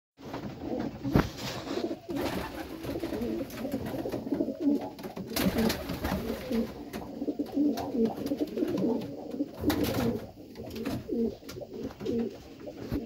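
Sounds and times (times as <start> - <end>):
pigeon cooing: 0.6 - 13.0.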